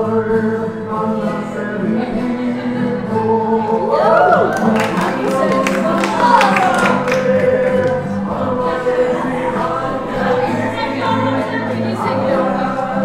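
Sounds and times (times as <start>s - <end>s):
choir singing long notes: 0.0s - 13.0s.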